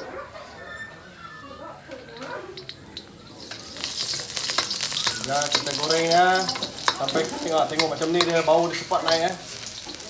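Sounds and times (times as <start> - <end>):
garlic frying in oil: 1.9 - 10.0.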